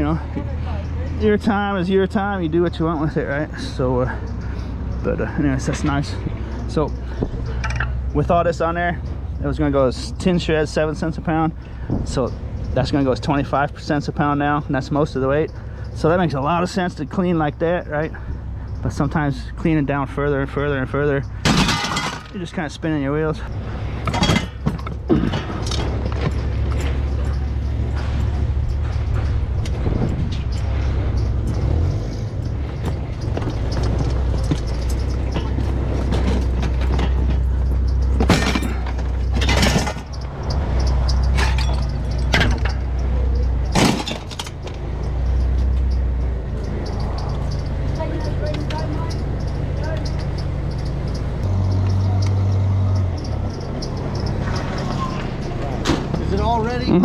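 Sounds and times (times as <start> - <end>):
low engine rumble: 0.0 - 57.0
scrap parts knocking and clattering: 7.2 - 8.0, 21.2 - 22.4, 23.9 - 47.0.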